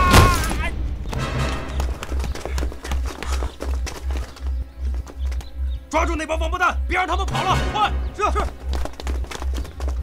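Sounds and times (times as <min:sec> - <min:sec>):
tense film score with drum pulse: 0:00.0 - 0:10.0
boots running on stone: 0:01.1 - 0:05.6, 0:08.2 - 0:10.0.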